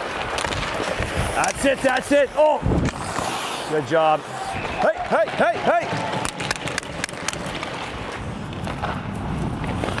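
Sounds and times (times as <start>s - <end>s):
skate blades scraping ice: 0.0s - 10.0s
sharp clacks: 6.0s - 7.9s.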